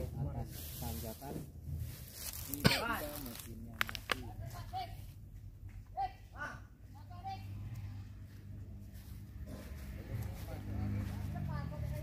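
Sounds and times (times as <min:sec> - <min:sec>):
diesel truck engine passing: 0:07.5 - 0:12.0.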